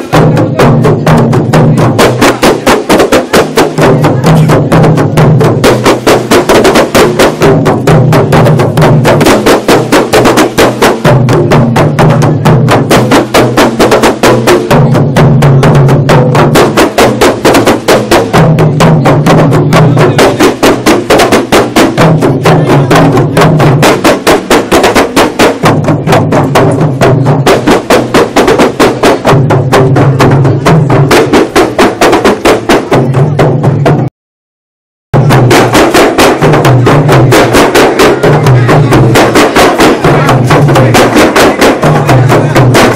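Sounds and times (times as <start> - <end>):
deeper drum layer: 0.0 - 34.1, 35.2 - 42.9
frame drums slapping: 0.0 - 34.1, 35.2 - 42.9.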